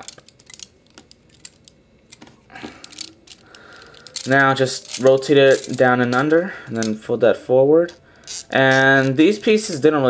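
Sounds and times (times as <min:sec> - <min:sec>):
plastic toy parts clicking: 0:02.8 - 0:06.2, 0:08.2 - 0:09.5.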